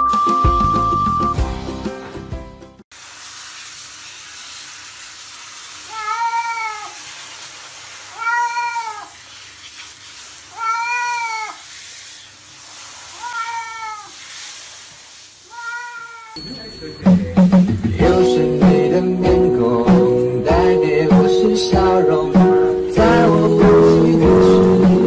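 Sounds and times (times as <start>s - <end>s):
shower hiss: 2.9s - 16.8s, 18.2s - 25.0s
cat meowing: 5.9s - 7.0s, 8.1s - 9.2s, 10.5s - 11.6s, 13.2s - 14.2s, 15.5s - 16.4s.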